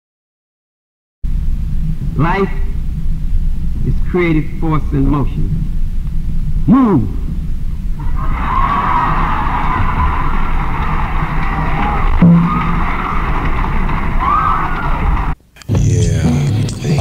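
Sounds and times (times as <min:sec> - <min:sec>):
noisy sound effect with low rumble: 0:01.2 - 0:17.0
hip hop music: 0:15.7 - 0:17.0.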